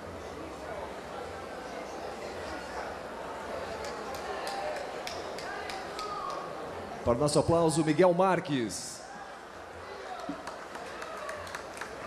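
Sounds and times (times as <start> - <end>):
murmur of crowd voices: 0.0 - 12.0
scattered handclaps: 3.8 - 6.4, 10.2 - 12.0.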